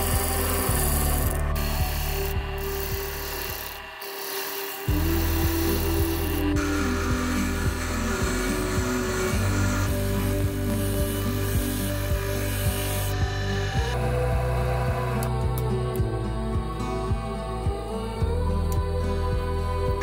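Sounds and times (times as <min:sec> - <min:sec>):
sanding drum machine hum: 0:00.0 - 0:15.2.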